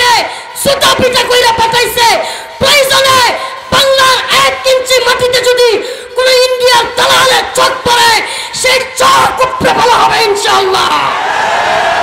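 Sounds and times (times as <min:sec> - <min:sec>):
boy shouting into microphone: 0:00.0 - 0:11.2.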